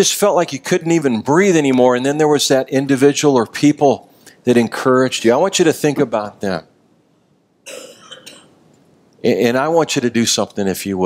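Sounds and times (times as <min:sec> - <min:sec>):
person clearing throat: 0:07.7 - 0:08.6.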